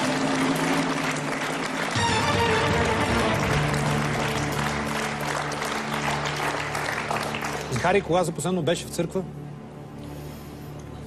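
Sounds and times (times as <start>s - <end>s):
studio audience applauding: 0.0s - 8.5s
music: 0.0s - 11.0s
sustained music chord: 1.8s - 10.5s.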